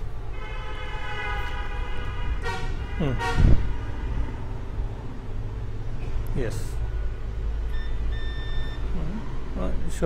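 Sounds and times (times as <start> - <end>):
multimeter continuity buzzer beeps: 7.7 - 8.9.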